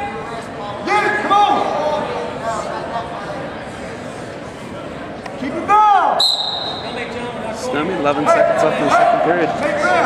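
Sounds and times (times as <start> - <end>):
loud shout: 5.6 - 6.7, 8.3 - 10.0
referee's whistle blast: 6.2 - 7.0.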